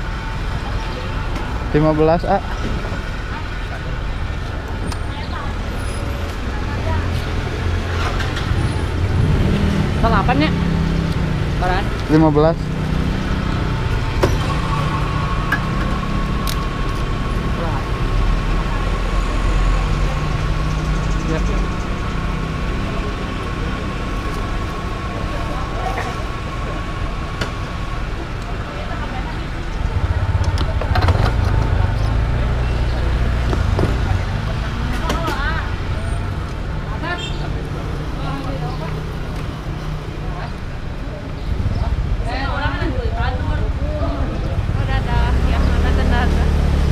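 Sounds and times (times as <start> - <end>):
motorcycle engines idling: 0.0 - 46.9.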